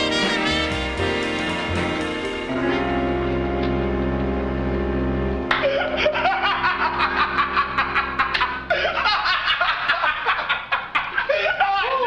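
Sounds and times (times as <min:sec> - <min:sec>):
man laughing hard: 0:05.5 - 0:12.0.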